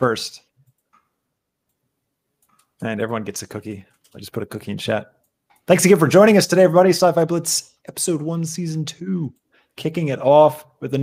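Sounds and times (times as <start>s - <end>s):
man speaking: 0.0s - 0.6s, 2.8s - 11.0s
faint clicks: 0.6s - 1.8s.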